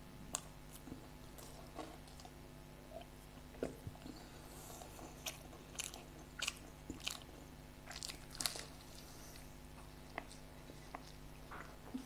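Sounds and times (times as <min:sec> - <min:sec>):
crunching fried pastry: 0:04.8 - 0:12.0.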